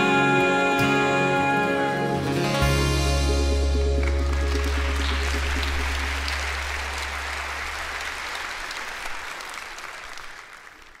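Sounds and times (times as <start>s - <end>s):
congregation applauding: 3.7s - 11.0s.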